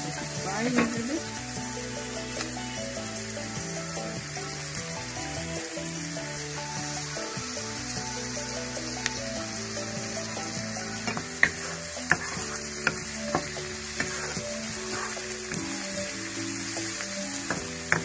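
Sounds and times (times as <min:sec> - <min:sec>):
background music: 0:00.0 - 0:18.0
onions sizzling in a wok: 0:00.0 - 0:18.0.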